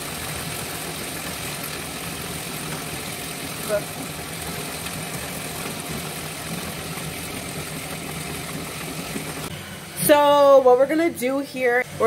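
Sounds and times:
exhaust fan humming: 0.0s - 12.0s.

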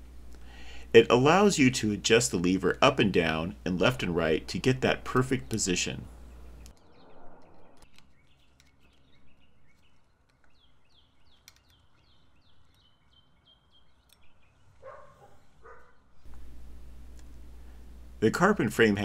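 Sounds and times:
small bird singing: 5.0s - 16.3s.

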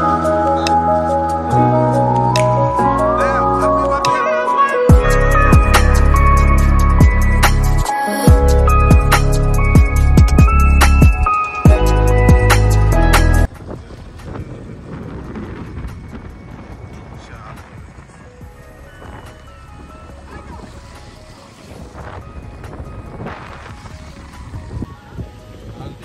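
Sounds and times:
loud music: 0.0s - 13.5s
wind on microphone: 13.4s - 26.0s
motorbike engine running: 18.4s - 24.9s.

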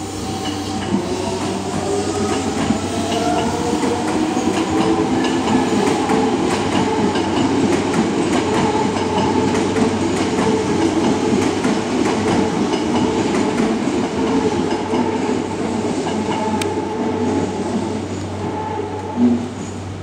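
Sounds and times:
rumble of train wheels: 0.0s - 20.0s.

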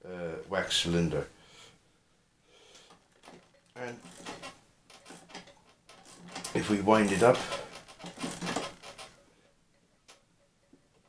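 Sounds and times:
faint mechanical clicks and knocks: 2.7s - 11.0s.

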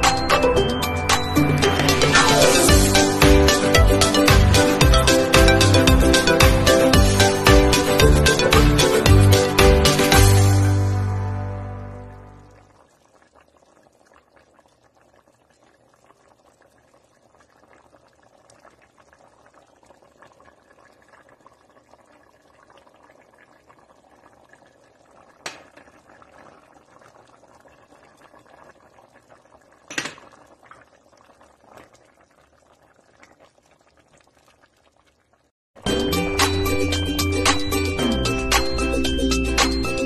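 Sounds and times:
loud music: 0.0s - 12.4s, 35.8s - 40.0s
stew bubbling in a pot: 12.2s - 35.5s.

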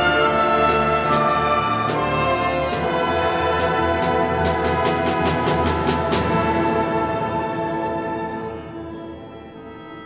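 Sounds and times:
orchestra playing sustained chords: 0.0s - 10.0s.

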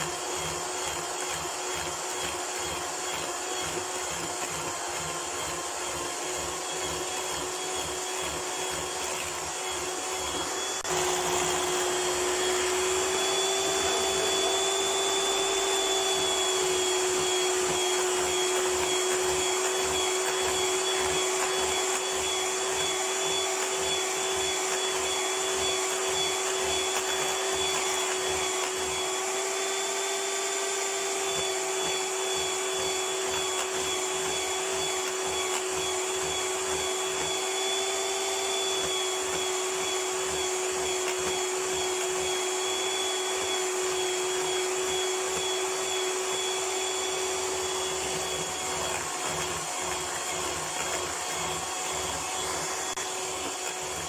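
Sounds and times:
electric hand mixer running: 0.0s - 54.0s.

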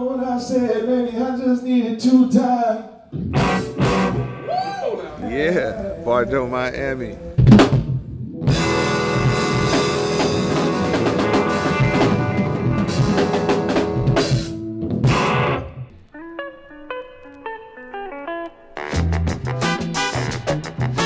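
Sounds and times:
live band playing: 3.1s - 21.0s.

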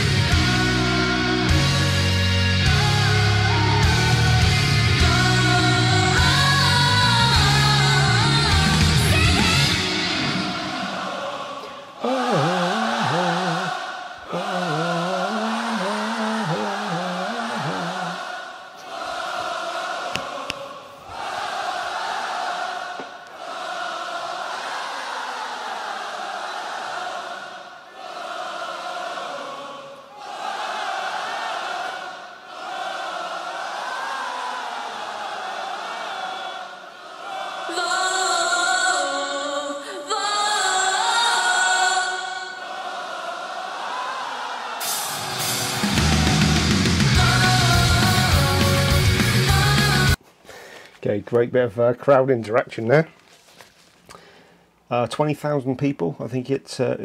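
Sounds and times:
crowd chanting: 2.6s - 39.8s, 40.8s - 50.2s.

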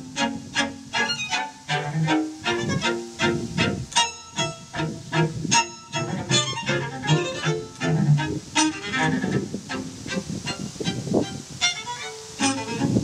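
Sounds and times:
string quartet playing: 0.0s - 13.0s.

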